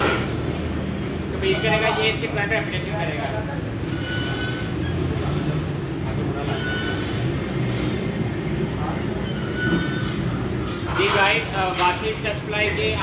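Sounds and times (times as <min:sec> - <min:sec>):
exercise machine squeaking: 0:00.0 - 0:05.4, 0:06.4 - 0:08.0, 0:09.0 - 0:13.0.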